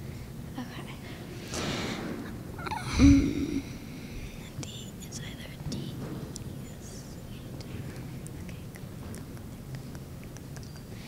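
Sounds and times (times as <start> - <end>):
low room hum: 0.0 - 11.0
faint whispering: 0.5 - 1.3, 2.8 - 11.0.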